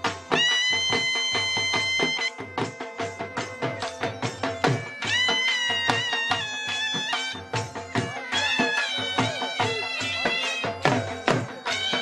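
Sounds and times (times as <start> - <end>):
drum beating steady rhythm: 0.0 - 12.0
reedy wind instrument note: 0.3 - 4.1.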